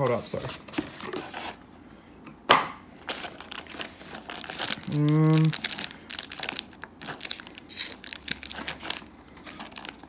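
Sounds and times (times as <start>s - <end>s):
foil packs and cardboard crinkling: 3.0s - 10.0s.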